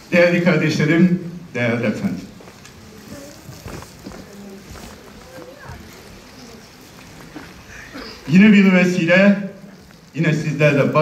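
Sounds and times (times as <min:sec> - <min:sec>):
faint voices murmuring: 0:02.1 - 0:10.2.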